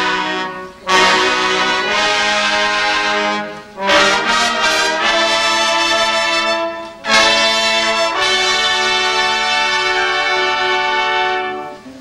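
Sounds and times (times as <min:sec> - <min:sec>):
brass band playing chords: 0:00.0 - 0:12.0.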